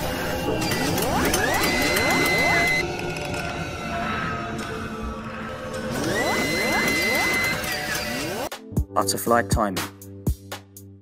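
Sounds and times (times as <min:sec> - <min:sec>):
rising sweeps: 0:00.0 - 0:08.5.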